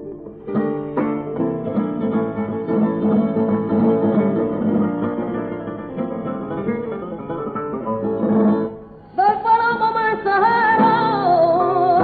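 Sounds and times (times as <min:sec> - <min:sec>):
flamenco guitar playing: 0:00.0 - 0:12.0.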